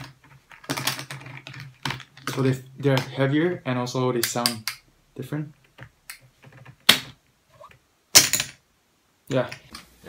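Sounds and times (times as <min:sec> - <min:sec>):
poker chips clattering onto stack: 0:00.0 - 0:02.6.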